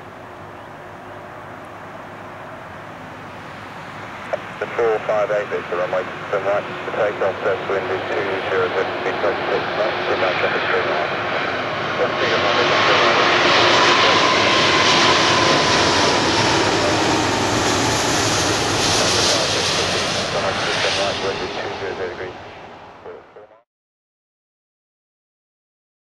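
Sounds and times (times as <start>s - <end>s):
jet airliner roar overhead: 0.0s - 23.6s
jet engine whine: 0.0s - 23.6s.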